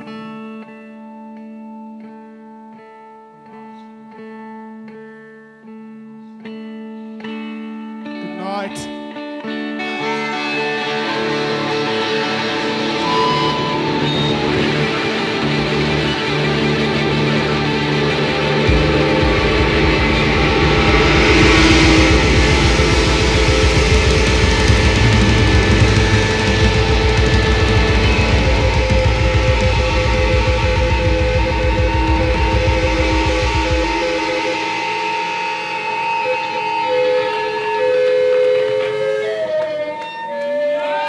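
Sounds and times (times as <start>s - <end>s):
electric guitars sustaining notes: 0.0s - 41.0s
rock band playing: 8.2s - 40.0s
bass and drums beat: 11.3s - 36.5s.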